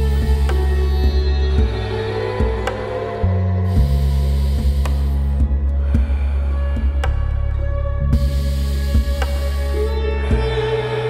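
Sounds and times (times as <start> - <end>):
ambient meditation music: 0.0 - 11.0
hissing breath: 3.6 - 7.4.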